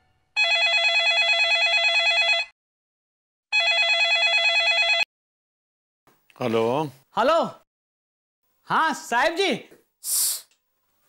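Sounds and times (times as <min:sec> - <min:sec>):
telephone ringing electronic warble: 0:00.4 - 0:02.5, 0:03.5 - 0:05.1.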